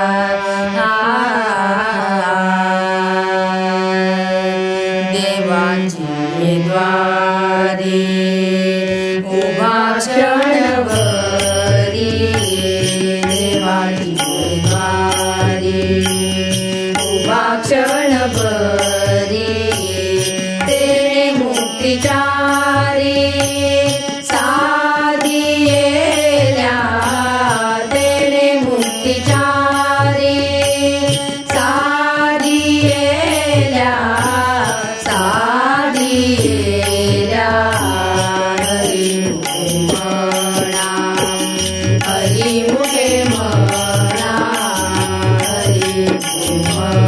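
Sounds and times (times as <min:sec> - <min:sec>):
harmonium: 0:00.0 - 0:47.0
person singing: 0:00.0 - 0:47.0
tabla: 0:00.0 - 0:47.0.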